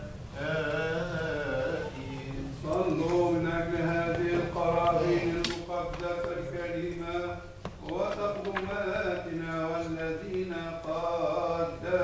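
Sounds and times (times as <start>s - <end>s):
voices chanting a hymn: 0.0s - 12.0s.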